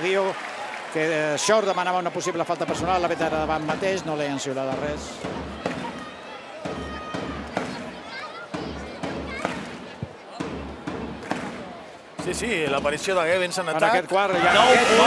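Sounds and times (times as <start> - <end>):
arena crowd voices: 0.0 - 15.0.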